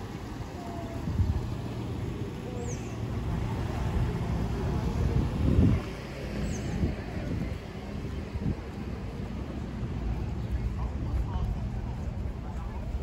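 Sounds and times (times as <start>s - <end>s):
low traffic rumble: 0.0s - 13.0s
voices of passers-by: 0.0s - 13.0s.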